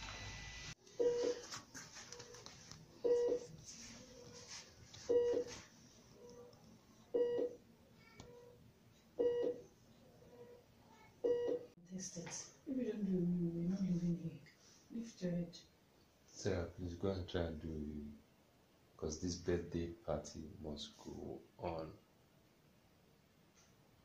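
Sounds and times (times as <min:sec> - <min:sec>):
vital signs monitor beeping: 0:00.9 - 0:02.4, 0:03.0 - 0:03.6, 0:05.0 - 0:05.6, 0:07.1 - 0:07.6, 0:09.2 - 0:09.7, 0:11.2 - 0:11.7.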